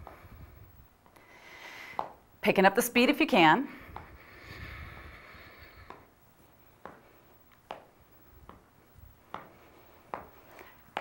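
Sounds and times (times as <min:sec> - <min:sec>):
faint feet tapping on floor: 0:00.0 - 0:00.3, 0:01.0 - 0:02.3, 0:03.8 - 0:11.0.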